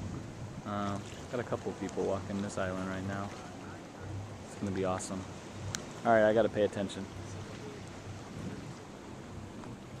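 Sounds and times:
wind noise on microphone: 0.0s - 1.3s, 7.2s - 10.0s
low boat hum: 0.0s - 10.0s.

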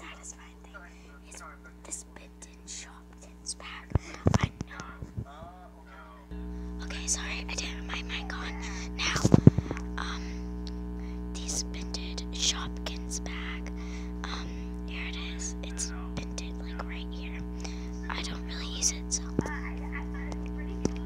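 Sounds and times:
steady background drone: 0.0s - 21.0s.

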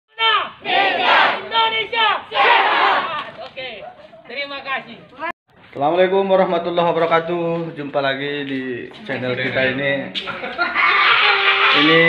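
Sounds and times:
children chanting in unison: 0.6s - 1.5s.

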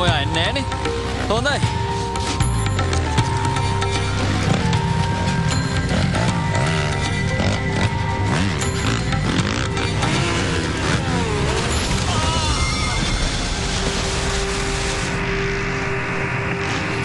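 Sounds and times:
dirt bike engine revving: 3.0s - 15.2s.

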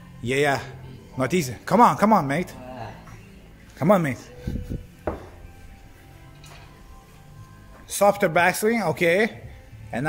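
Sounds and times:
faint background music: 0.0s - 10.0s.

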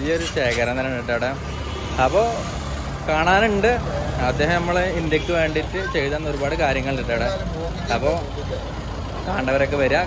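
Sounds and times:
man talking: 0.0s - 10.0s
street noise: 0.0s - 10.0s
vehicle engine humming: 0.0s - 10.0s.

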